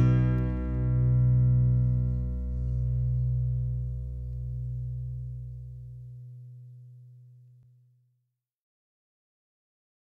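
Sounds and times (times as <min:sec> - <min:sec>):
guitar chord ringing: 0:00.0 - 0:07.8
steady low held note: 0:00.0 - 0:07.8.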